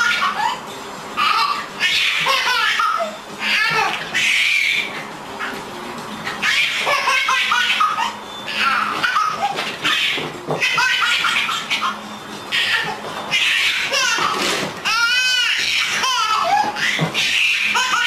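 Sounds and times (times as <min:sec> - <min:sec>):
baby laughing: 0:00.0 - 0:00.6, 0:01.2 - 0:05.6, 0:06.2 - 0:18.0.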